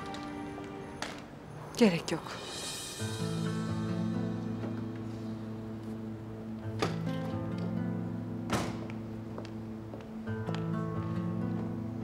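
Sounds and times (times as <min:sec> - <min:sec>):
dramatic score of sustained notes: 0:00.0 - 0:09.9.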